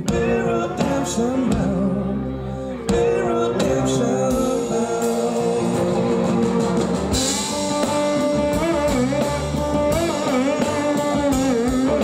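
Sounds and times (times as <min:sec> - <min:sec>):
drums: 0:00.0 - 0:12.0
pedal steel guitar: 0:00.0 - 0:12.0
person singing: 0:00.0 - 0:12.0
upright bass: 0:00.0 - 0:12.0.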